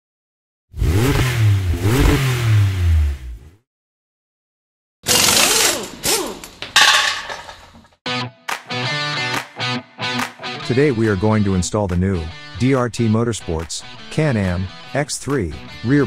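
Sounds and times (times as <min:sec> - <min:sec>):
vehicle engine revving: 0:00.8 - 0:03.6
sharp clattering hits: 0:05.9 - 0:08.0.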